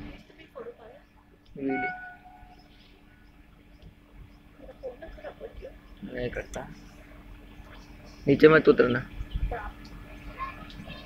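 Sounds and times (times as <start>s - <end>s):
steady low hum: 0.0s - 11.0s
train horn: 1.6s - 2.5s.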